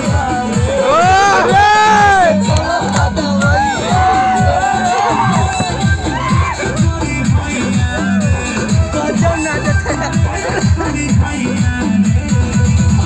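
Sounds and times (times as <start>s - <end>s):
crowd cheering and shouting: 0.0s - 11.0s
dance remix over sound system: 0.0s - 13.0s.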